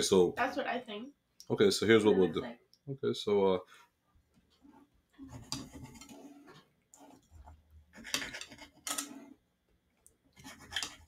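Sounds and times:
blade scraping ceramic plate: 5.3s - 7.2s, 7.9s - 9.4s, 10.4s - 11.0s.

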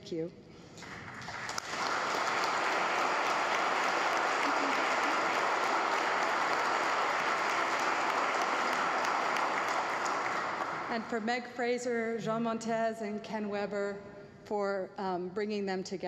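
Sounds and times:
audience applauding: 0.8s - 11.1s.

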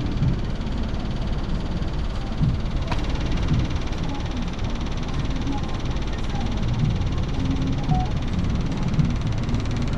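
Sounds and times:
car engine low rumble: 0.0s - 9.9s.

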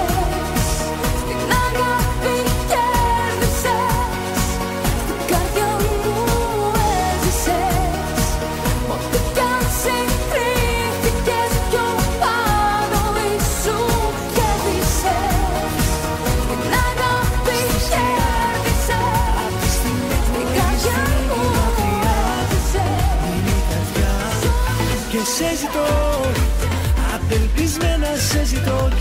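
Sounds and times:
pop music with ornamented melody: 0.0s - 29.0s.

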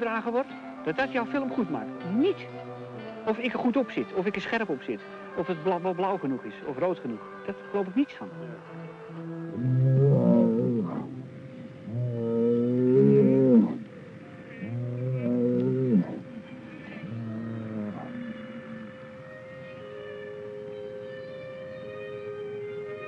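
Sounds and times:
eerie moaning tones: 8.4s - 22.6s.

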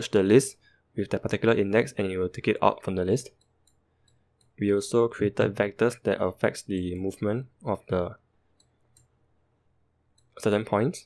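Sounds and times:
computer mouse clicks: 3.3s - 4.6s, 8.6s - 9.2s.

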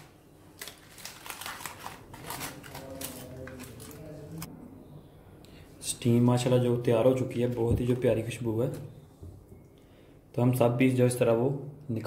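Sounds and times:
aluminium foil crinkling: 0.0s - 4.5s.

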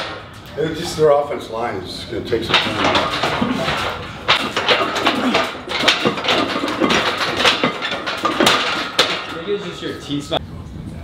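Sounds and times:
gym equipment knocks and clanks: 0.0s - 0.7s, 2.3s - 10.2s.

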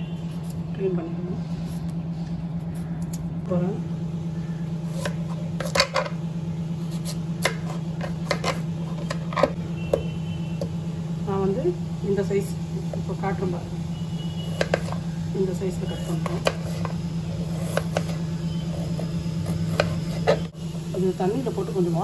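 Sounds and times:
low hum: 0.0s - 22.0s
knife chopping on chopping board: 17.5s - 18.2s, 18.9s - 20.5s.

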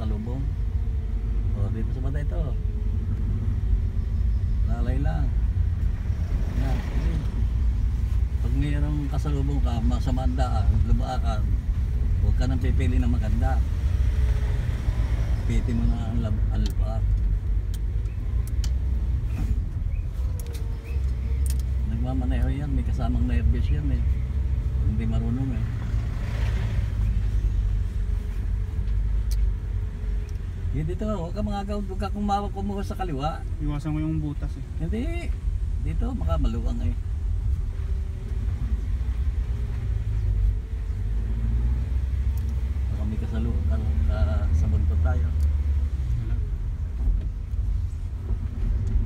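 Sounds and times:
car engine and tyre rumble: 0.0s - 49.0s.

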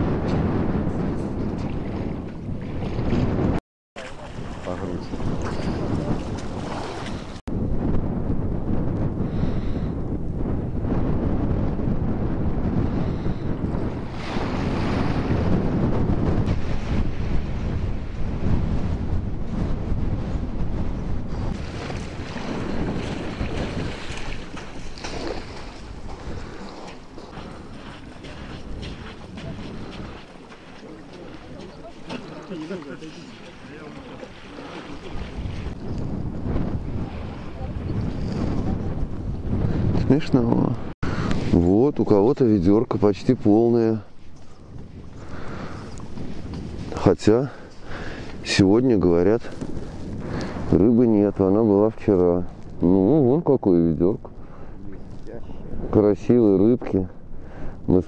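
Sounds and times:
wind rumbling on microphone: 0.0s - 58.0s
shallow water lapping and sloshing: 1.2s - 7.5s, 13.1s - 15.6s, 21.3s - 38.6s, 44.1s - 47.0s, 49.5s - 50.7s.

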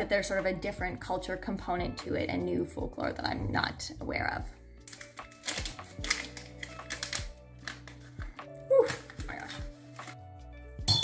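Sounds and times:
lofi music with soft beat: 0.0s - 11.0s.

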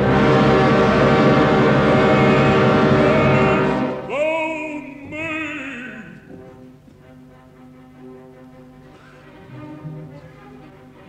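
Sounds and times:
orchestra playing loud passage: 0.0s - 6.8s.

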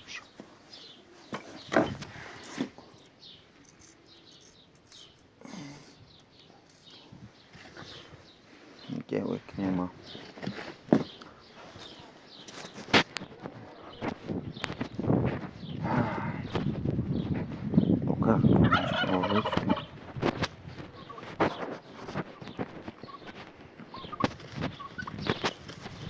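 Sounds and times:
birds chirping: 0.0s - 26.0s
indistinct voices: 15.8s - 16.6s.

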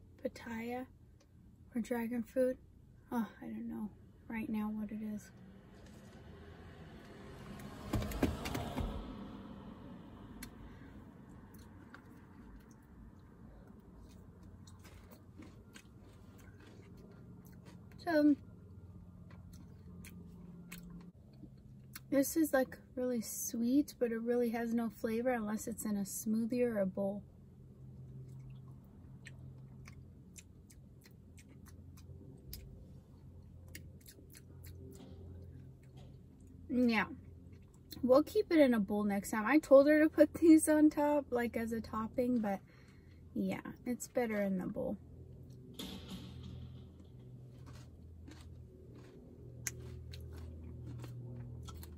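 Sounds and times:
steady low hum: 0.0s - 51.9s
quiet chewing: 10.4s - 22.1s, 28.0s - 36.6s, 37.2s - 38.0s, 47.0s - 51.9s.

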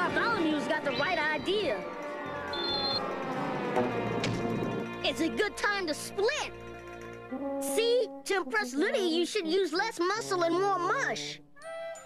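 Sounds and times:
cartoon music: 0.8s - 3.8s, 7.3s - 12.0s
brief high steady tone: 2.5s - 3.0s.

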